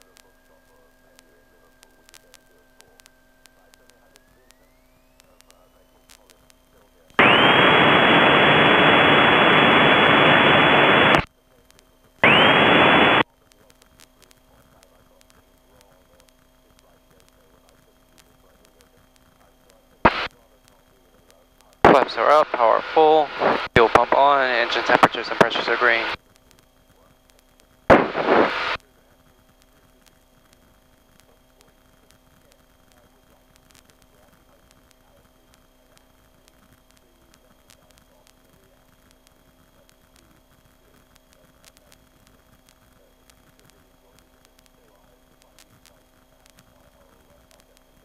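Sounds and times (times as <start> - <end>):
faint aircraft engine hum: 0.0 - 48.0
loud radio static: 0.0 - 48.0
headset static burst: 7.2 - 11.3, 12.2 - 13.2, 20.0 - 20.3, 21.9 - 26.2, 27.9 - 28.8.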